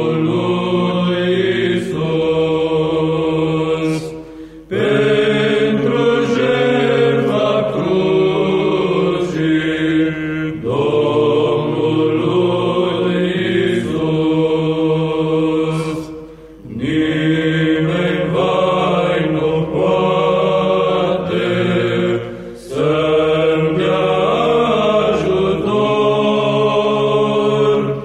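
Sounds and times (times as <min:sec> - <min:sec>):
male choir singing a hymn: 0:00.0 - 0:28.0.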